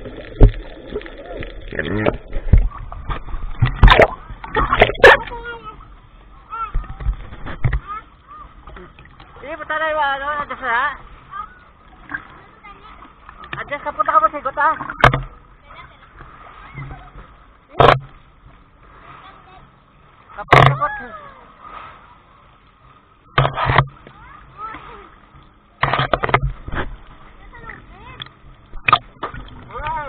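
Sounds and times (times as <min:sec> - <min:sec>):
water splash against camera: 0:00.0 - 0:05.6, 0:06.7 - 0:08.0, 0:13.2 - 0:15.4, 0:20.3 - 0:22.0, 0:23.3 - 0:25.0, 0:25.8 - 0:30.0
sea water sloshing: 0:00.0 - 0:30.0.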